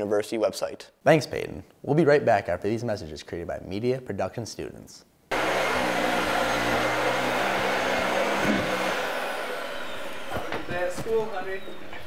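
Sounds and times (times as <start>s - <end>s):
vacuum cleaner running: 5.3s - 12.0s.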